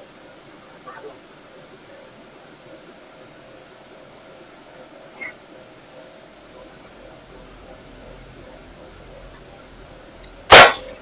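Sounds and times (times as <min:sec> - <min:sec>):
loud bang: 0:10.5 - 0:10.9.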